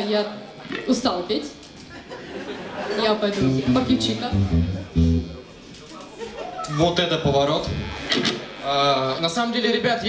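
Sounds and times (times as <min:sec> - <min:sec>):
electric and bass guitar riff: 0:03.4 - 0:05.5.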